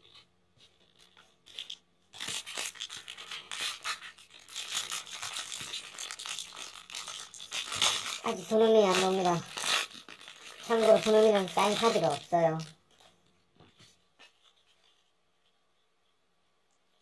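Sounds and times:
foil wrapper tearing and crinkling: 0.0 - 13.0.

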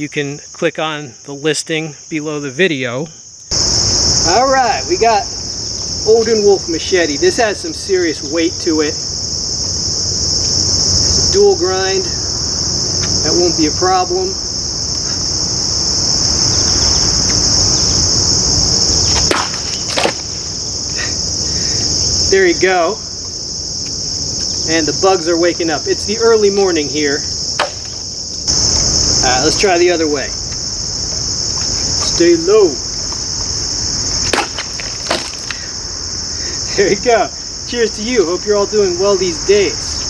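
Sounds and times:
crickets chirping: 0.0 - 40.0
insects droning: 0.0 - 40.0
machete chopping plastic bottle: 19.2 - 20.3, 27.6 - 28.0, 34.3 - 35.6
sharp knock: 27.6 - 28.0.

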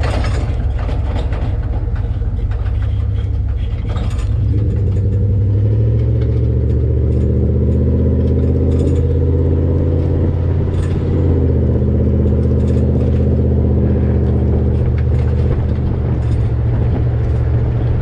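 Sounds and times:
light rattles: 0.0 - 18.0
truck exhaust running: 0.0 - 18.0.

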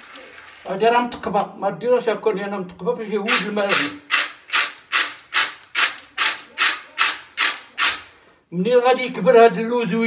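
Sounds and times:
nuts rattling in a metal colander: 3.3 - 8.1.

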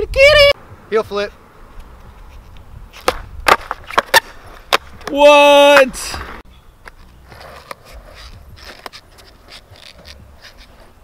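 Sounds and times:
skateboard clacking on concrete: 3.0 - 6.0, 6.8 - 10.9.

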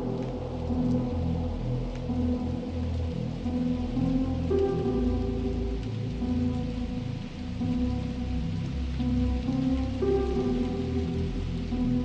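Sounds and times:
rain-like hiss: 0.0 - 12.0.

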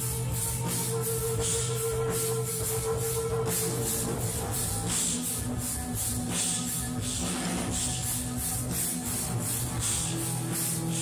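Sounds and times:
bass line: 0.0 - 11.0
drums and cymbals: 0.0 - 11.0.

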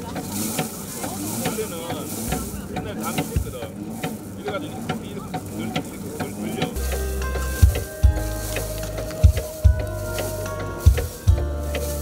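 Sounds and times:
rice thresher crackling and rattling: 0.0 - 12.0
music with heavy bass beat: 6.6 - 12.0.

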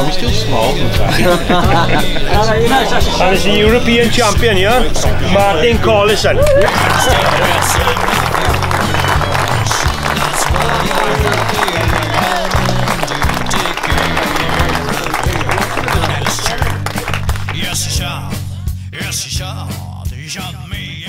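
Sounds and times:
background music with bass line: 0.0 - 21.0
crowd applauding: 6.4 - 18.2.

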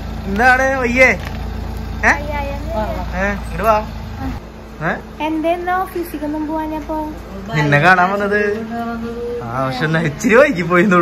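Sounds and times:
car engine idling: 0.0 - 11.0
woman speaking: 5.2 - 7.9.

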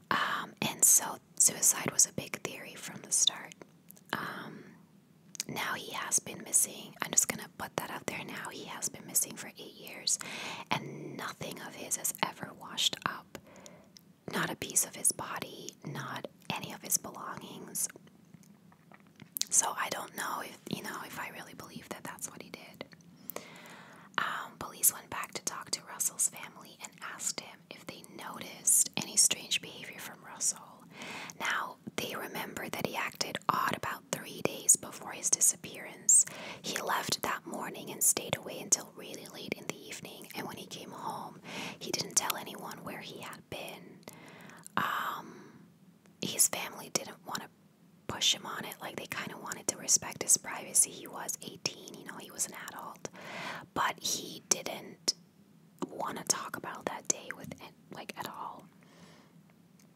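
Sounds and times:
woman whispering: 0.1 - 4.8, 5.4 - 13.4, 14.3 - 18.0, 19.4 - 22.9, 24.2 - 44.0, 44.6 - 45.6, 46.2 - 47.5, 48.1 - 55.2, 55.8 - 58.7.

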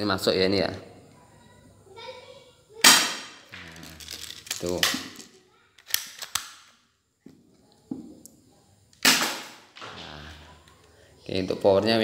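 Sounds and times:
pistol slide clicks: 5.8 - 6.7
airsoft pistol shot: 9.0 - 9.7.

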